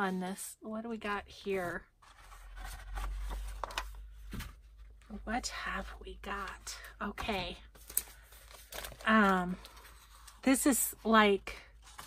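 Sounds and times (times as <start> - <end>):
paper rustling and sliding: 2.0 - 4.5
paper crinkles: 7.2 - 10.4.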